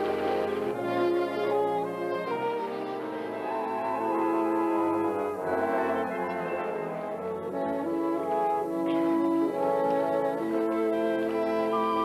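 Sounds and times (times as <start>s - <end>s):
orchestral brass melody: 0.0s - 12.0s.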